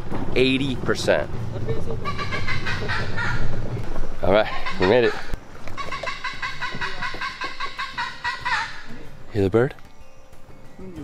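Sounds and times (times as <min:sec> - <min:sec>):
bird calling repeated notes: 0:02.0 - 0:11.0.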